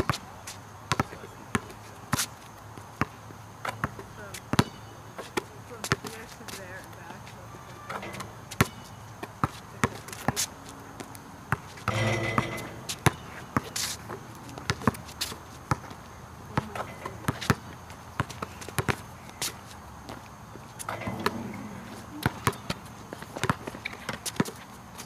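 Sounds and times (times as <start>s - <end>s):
basketball bouncing on asphalt: 0.0s - 25.0s.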